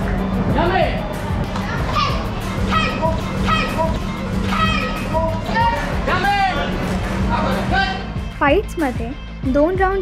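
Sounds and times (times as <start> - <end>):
background music: 0.0 - 10.0
young spectators shouting: 1.5 - 6.7.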